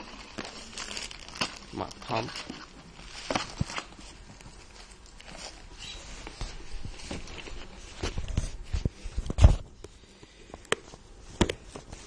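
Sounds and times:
plastic bag and paper crinkling: 0:00.0 - 0:09.8.

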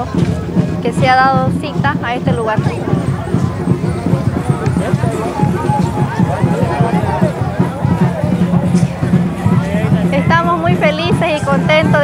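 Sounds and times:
crowd voices: 0:00.0 - 0:12.0
dance music with drum beat: 0:00.0 - 0:12.0.

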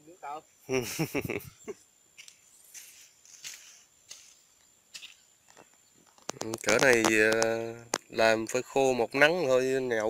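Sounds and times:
person laughing: 0:00.7 - 0:01.8
faint rustling: 0:01.2 - 0:08.8.

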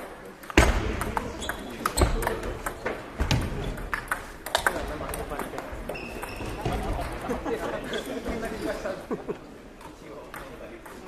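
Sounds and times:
ping-pong ball clicks on paddles: 0:03.8 - 0:06.4.

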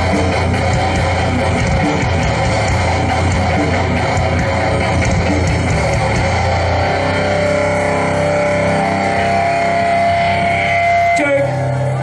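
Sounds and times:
distorted guitars holding chord: 0:00.0 - 0:12.0
high sustained tone: 0:06.4 - 0:12.0.

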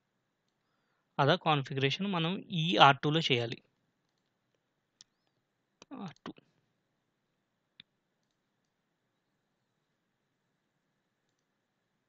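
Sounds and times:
computer mouse click: 0:07.8 - 0:08.8, 0:11.2 - 0:11.5.

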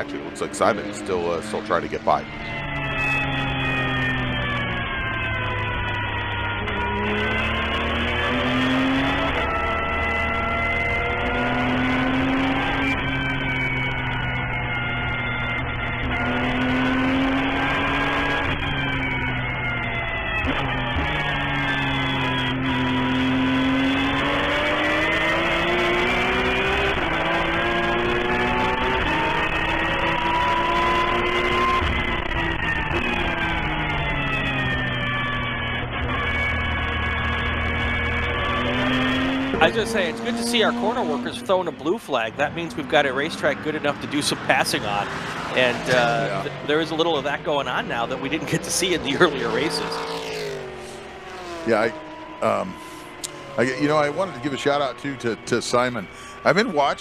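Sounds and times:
gear changes: 0:00.0 - 0:57.0
racing car engine revving: 0:00.0 - 0:57.0.

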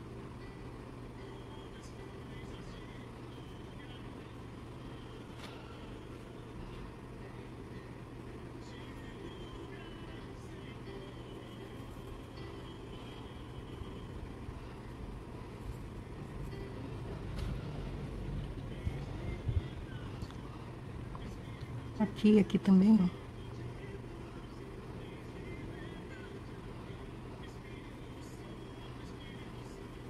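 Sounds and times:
low background hum: 0:00.0 - 0:30.0.

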